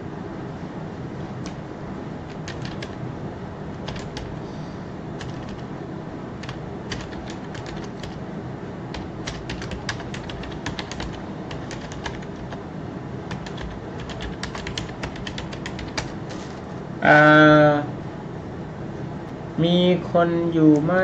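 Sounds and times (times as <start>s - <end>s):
steady background hiss: 0.0s - 21.0s.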